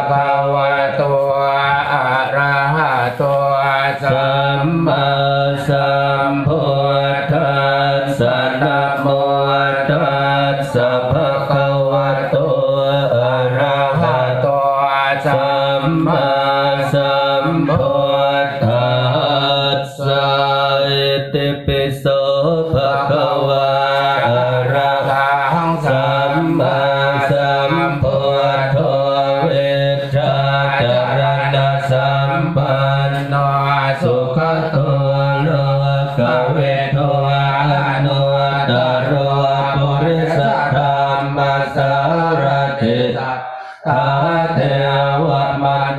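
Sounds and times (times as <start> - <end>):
low monotone chanting: 0.0 - 45.9.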